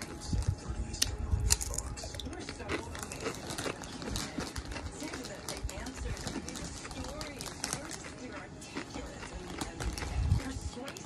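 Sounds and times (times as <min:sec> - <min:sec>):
person chewing crunchy chips: 0:00.0 - 0:11.0.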